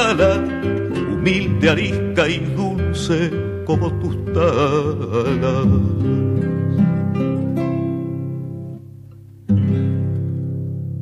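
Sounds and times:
acoustic guitar chords strummed: 0.0 - 11.0.

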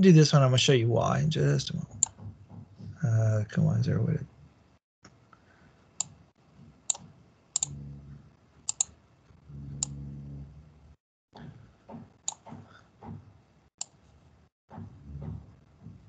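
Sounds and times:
computer mouse buttons clicking: 6.9 - 7.7, 8.7 - 9.0.

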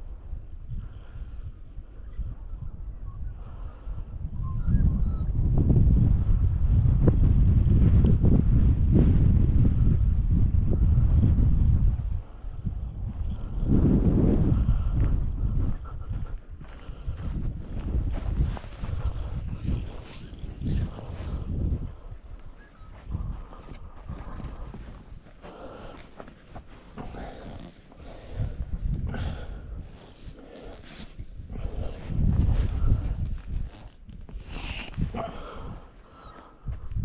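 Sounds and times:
wind rumbling on microphone: 0.0 - 37.0.

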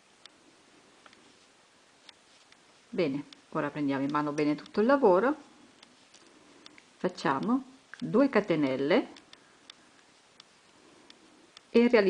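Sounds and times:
metal crochet hook ticks: 3.2 - 4.9.

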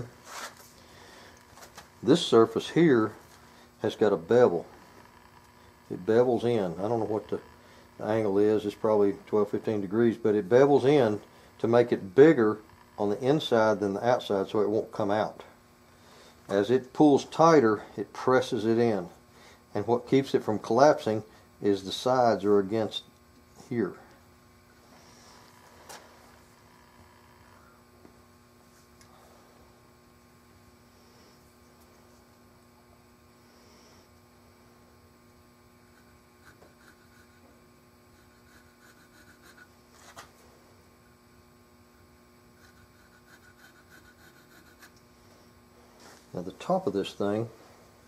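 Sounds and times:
low electrical hum: 0.0 - 48.0.

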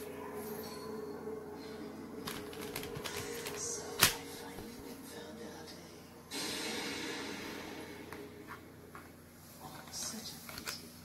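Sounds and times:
low hum: 0.0 - 9.7.

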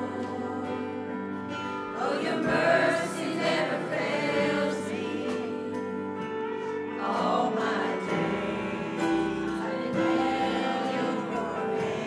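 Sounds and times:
choir singing gospel song: 0.0 - 12.0
instrumental accompaniment: 0.0 - 12.0.

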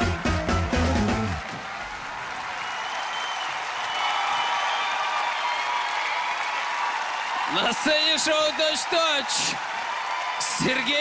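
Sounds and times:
live rock band: 0.0 - 1.4
audience applause and cheering: 0.0 - 11.0.

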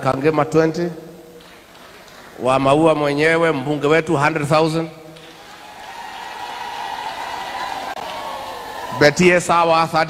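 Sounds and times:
audience applauding and cheering: 5.2 - 9.4.

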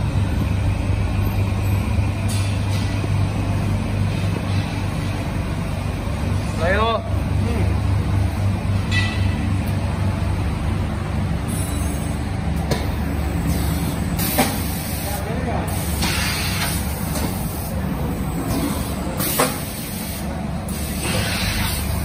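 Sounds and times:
air hisses: 18.5 - 22.0.

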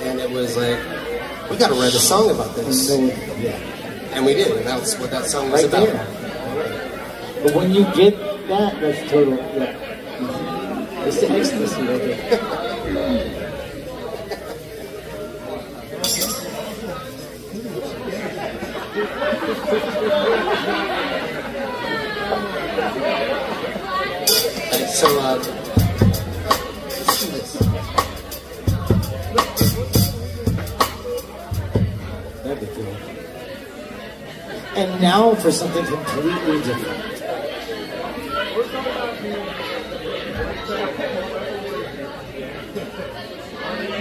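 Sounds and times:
bar crowd chatter: 0.0 - 44.0
man speaking loudly: 1.5 - 6.1
high clink: 16.0 - 16.8.

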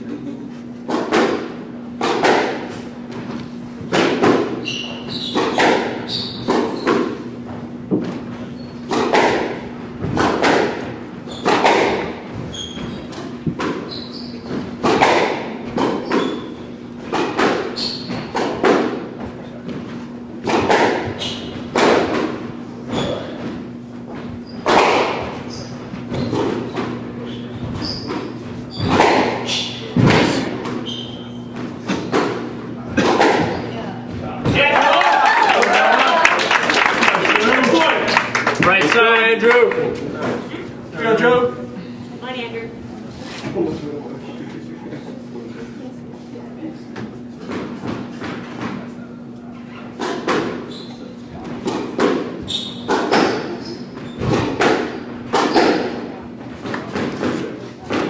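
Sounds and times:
squash ball hits echoing: 0.8 - 2.9, 3.8 - 4.7, 5.3 - 8.1, 8.9 - 12.3, 14.5 - 19.1, 20.4 - 23.3, 24.6 - 25.5, 26.1 - 34.8, 49.9 - 50.7, 51.6 - 53.6, 54.2 - 58.0
sneakers squeaking on hardwood: 0.9 - 34.6, 47.1 - 58.0.

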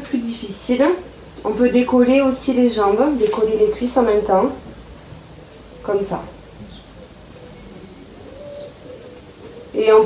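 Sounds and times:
faint bird calls: 5.3 - 10.0.

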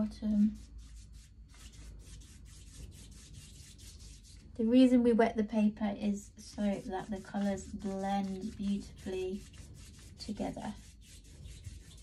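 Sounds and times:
brush strokes on paper: 0.0 - 4.6, 6.6 - 12.0.

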